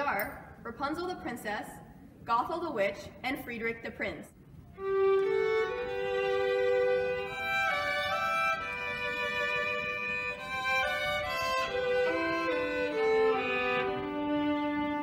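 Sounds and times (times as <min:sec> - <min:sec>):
violins playing slow melody: 0:04.7 - 0:15.0.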